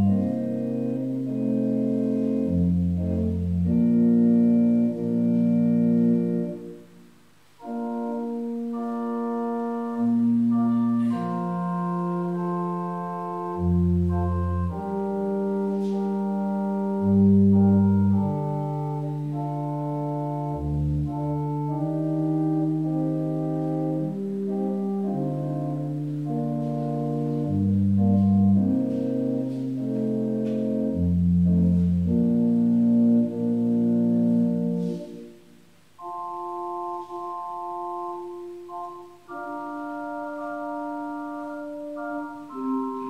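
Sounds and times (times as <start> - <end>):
organ playing sustained chords: 0.0 - 43.0.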